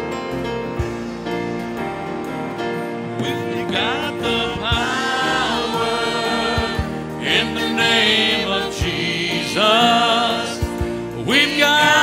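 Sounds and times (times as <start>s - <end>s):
gospel band with guitars: 0.0s - 12.0s.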